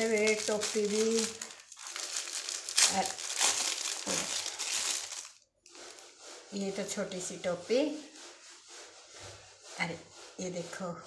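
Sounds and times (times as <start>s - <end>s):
plastic packaging crinkling: 0.0s - 6.0s.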